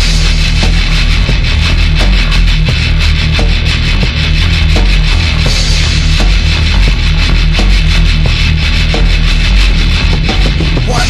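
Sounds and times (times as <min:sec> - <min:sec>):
distorted guitars and bass riff: 0:00.0 - 0:11.0.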